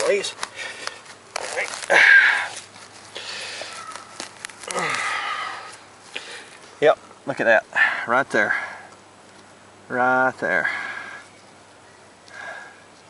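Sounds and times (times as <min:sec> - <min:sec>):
digging scraping soil and roots: 0:00.0 - 0:06.9.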